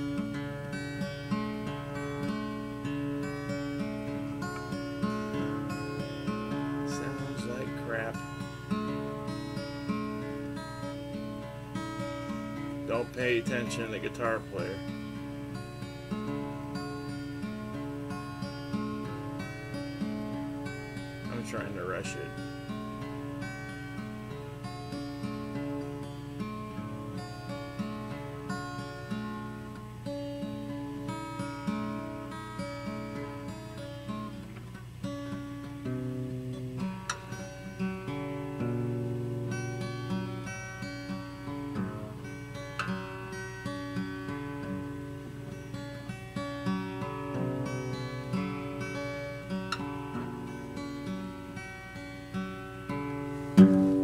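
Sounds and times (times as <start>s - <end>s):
acoustic guitar playing: 0.0s - 54.0s.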